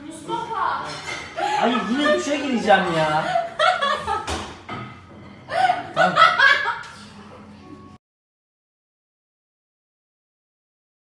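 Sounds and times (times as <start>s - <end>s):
person giggling: 1.4s - 2.3s.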